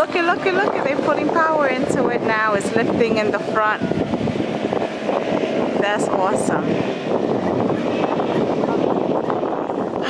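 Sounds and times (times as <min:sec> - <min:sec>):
motorboat engine running: 0:00.0 - 0:10.0
wind on microphone: 0:00.0 - 0:10.0.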